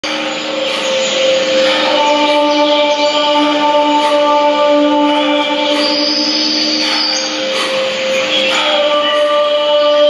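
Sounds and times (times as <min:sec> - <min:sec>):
low held tones: 0:00.0 - 0:10.0.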